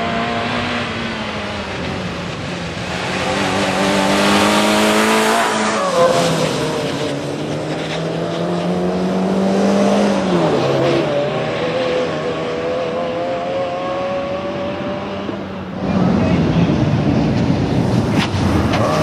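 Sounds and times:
rally car engine at high revs: 0:00.0 - 0:19.0.

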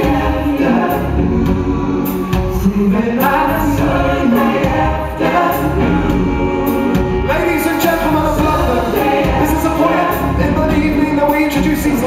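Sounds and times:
male vocal harmony singing: 0:00.0 - 0:12.0
pop band playing: 0:00.0 - 0:12.0.

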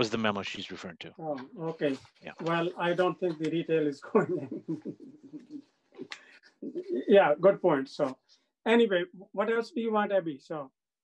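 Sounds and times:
man laughing: 0:04.0 - 0:05.7
faint voice murmuring: 0:04.1 - 0:07.4.

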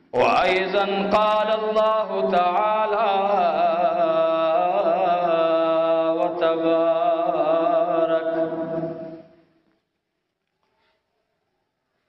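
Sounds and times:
man chanting: 0:00.0 - 0:09.2.

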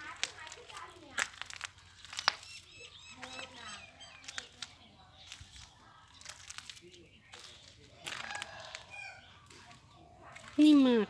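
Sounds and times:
footsteps on dirt: 0:00.0 - 0:11.0
rooster crowing faintly: 0:08.0 - 0:09.3.

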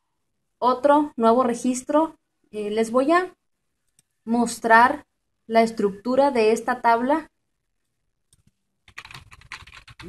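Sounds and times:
computer keyboard typing: 0:08.3 - 0:10.0.

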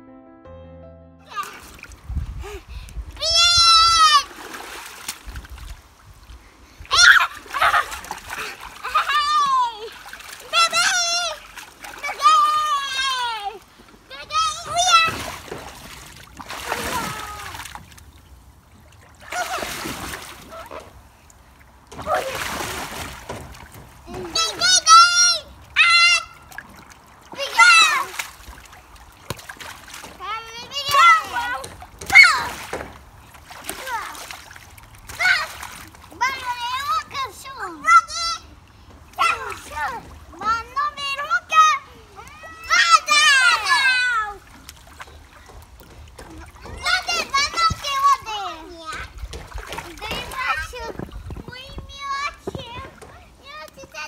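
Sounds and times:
children calling out: 0:01.3 - 0:01.7, 0:03.2 - 0:04.6, 0:06.8 - 0:15.6, 0:16.5 - 0:17.8, 0:19.2 - 0:20.9, 0:21.9 - 0:22.9, 0:24.0 - 0:26.6, 0:27.3 - 0:28.4, 0:30.2 - 0:32.8, 0:33.6 - 0:34.4, 0:35.1 - 0:54.0
children splashing in water: 0:01.3 - 0:54.0.

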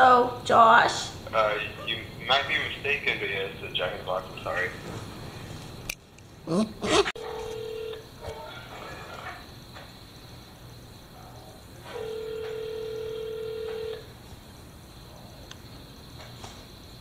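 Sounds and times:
telephone ringback tone: 0:07.2 - 0:08.0, 0:11.9 - 0:14.0.

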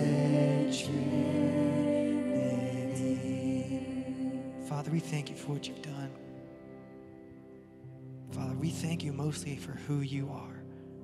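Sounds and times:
person singing: 0:00.0 - 0:06.2
worship band soft chord: 0:00.0 - 0:11.0.

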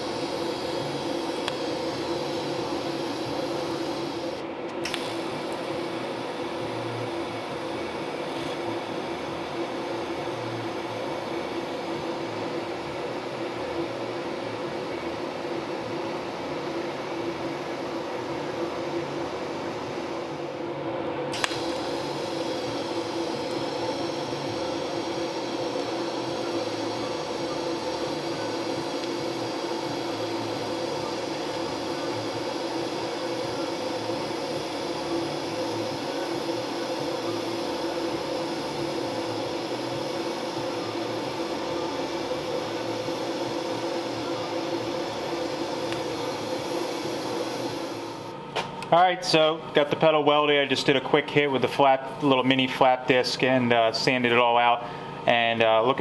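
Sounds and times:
welding torch hiss: 0:00.0 - 0:20.6, 0:21.3 - 0:55.9
machine hum: 0:00.0 - 0:56.0
welder arc striking click: 0:01.2 - 0:02.4, 0:03.8 - 0:05.7, 0:21.3 - 0:26.7, 0:28.6 - 0:30.2, 0:45.7 - 0:47.8.

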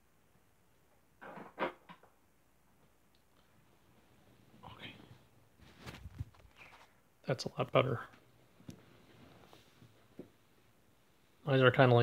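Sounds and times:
lamp shade rustle: 0:03.5 - 0:07.0, 0:07.7 - 0:10.6.

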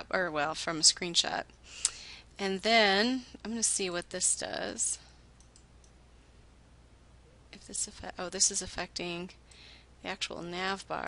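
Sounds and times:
low room hum: 0:00.0 - 0:11.0
computer mouse clicks: 0:05.4 - 0:06.0.

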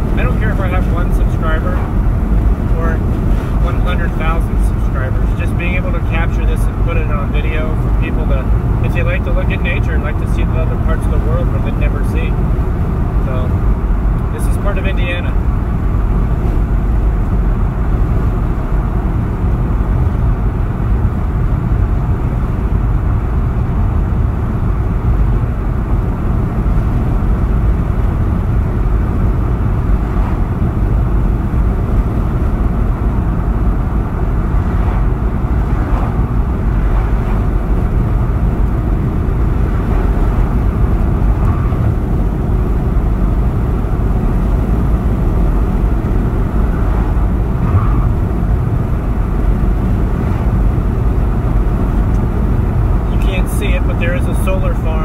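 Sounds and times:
road and tyre noise in car: 0:00.0 - 0:55.0.

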